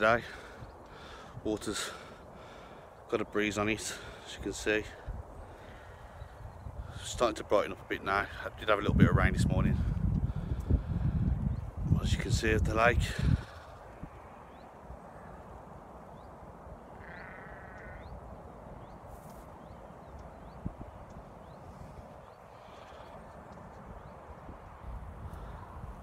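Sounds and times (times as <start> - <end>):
wind buffeting microphone: 4.4 - 26.0
bleating animal call: 16.8 - 18.2.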